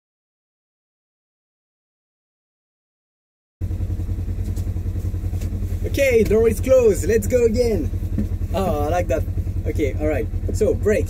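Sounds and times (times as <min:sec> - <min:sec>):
engine idling with low throb: 0:03.6 - 0:11.0.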